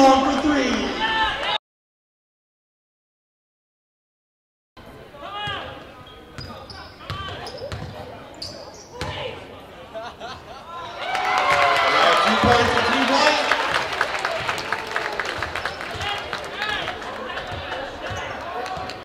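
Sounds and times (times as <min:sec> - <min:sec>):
crowd cheering and shouting: 0:00.0 - 0:01.6, 0:10.8 - 0:19.0
players' voices echoing: 0:00.0 - 0:01.6, 0:04.8 - 0:19.0
basketball bouncing on gym floor: 0:07.1 - 0:08.1.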